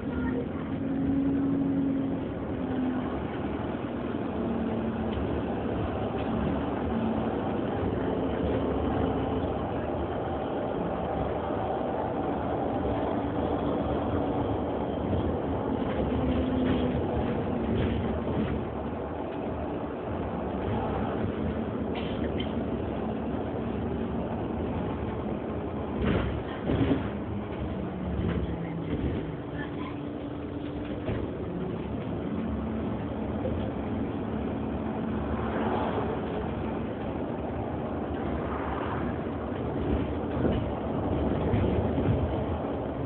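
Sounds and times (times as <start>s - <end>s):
bus interior running noise: 0.0s - 43.0s.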